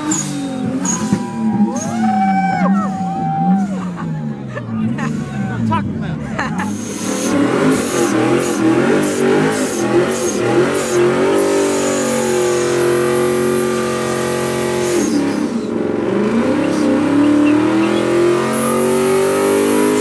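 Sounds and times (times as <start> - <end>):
car engine revving high: 0.0 - 20.0.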